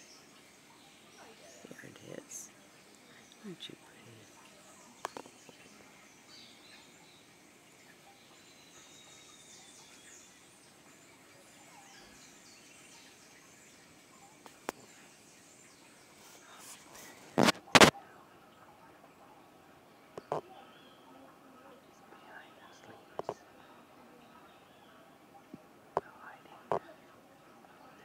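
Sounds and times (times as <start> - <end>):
faint bird chirps: 0.0 - 28.0.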